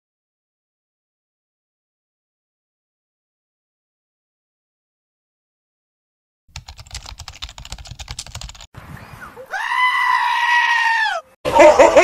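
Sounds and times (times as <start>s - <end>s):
gull screeching: 9.3s - 11.4s.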